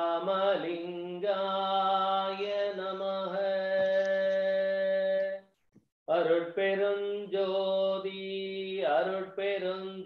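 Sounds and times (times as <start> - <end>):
man chanting a devotional hymn: 0.0 - 5.4, 6.1 - 10.0.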